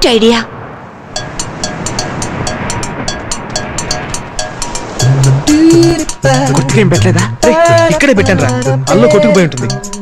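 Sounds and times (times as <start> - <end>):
steady rushing noise: 0.0 - 7.4
rhythmic ticking: 1.1 - 10.0
short repeated musical notes: 1.2 - 10.0.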